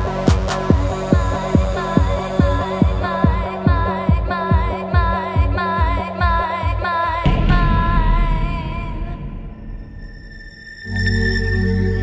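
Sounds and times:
house dance music: 0:00.0 - 0:07.3.

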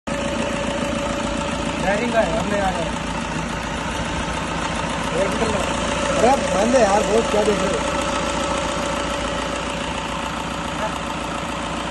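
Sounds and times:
car engine idling: 0:00.1 - 0:11.9.

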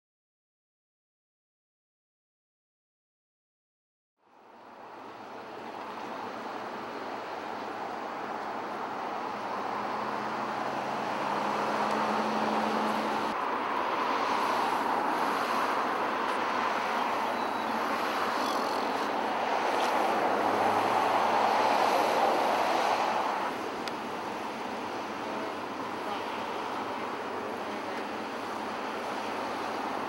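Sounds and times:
traffic passing: 0:04.2 - 0:30.0
low engine hum: 0:04.6 - 0:17.9.

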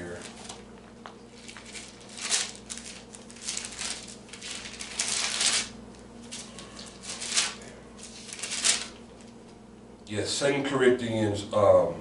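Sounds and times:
book pages turning: 0:01.3 - 0:09.4.

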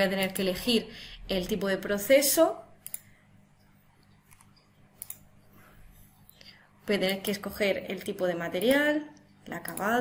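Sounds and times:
woman speaking: 0:00.0 - 0:02.8, 0:06.8 - 0:10.0
computer mouse click: 0:02.8 - 0:03.2, 0:04.0 - 0:05.3, 0:08.5 - 0:10.0.

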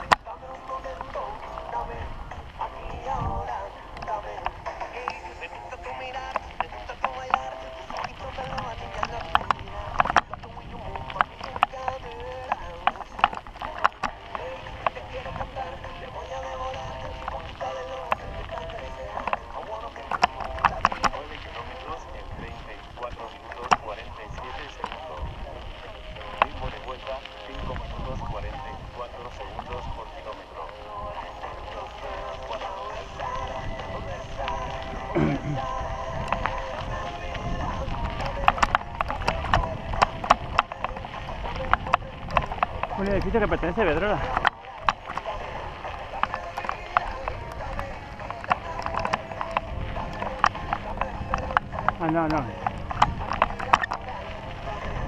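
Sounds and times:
music with voice: 0:00.0 - 0:55.0
wind buffeting microphone: 0:00.0 - 0:55.0
mountain bike rattling on dirt: 0:05.9 - 0:55.0.

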